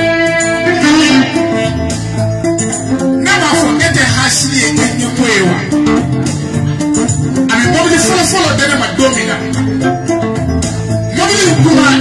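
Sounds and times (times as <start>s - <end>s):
instrumental backing music: 0.0s - 12.0s.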